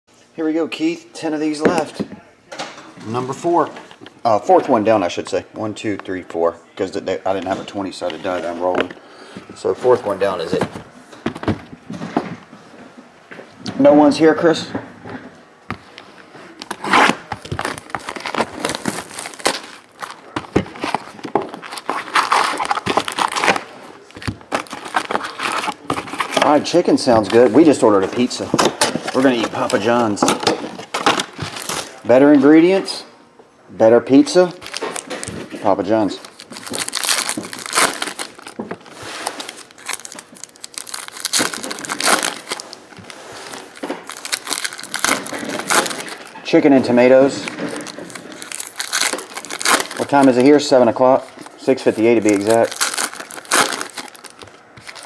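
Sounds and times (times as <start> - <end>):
cardboard and wrappers crinkling: 16.5 - 32.0, 34.5 - 55.0.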